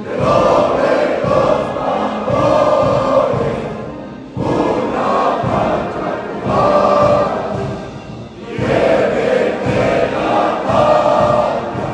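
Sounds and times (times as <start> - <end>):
choir singing with music: 0.0 - 11.9.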